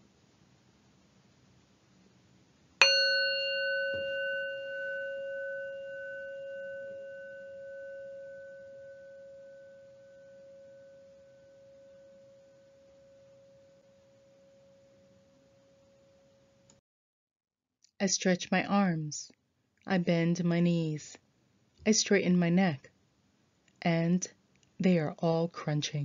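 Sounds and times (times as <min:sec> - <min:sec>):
meditation bell ringing: 0:02.8 - 0:15.9.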